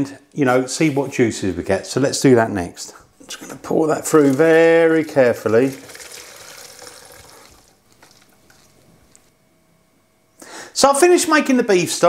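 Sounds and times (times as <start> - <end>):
liquid pouring through sieve: 3.9 - 8.8.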